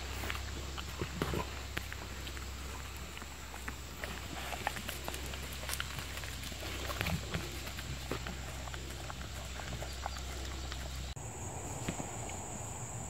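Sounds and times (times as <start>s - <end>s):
wolves licking and lapping: 0.0s - 11.2s.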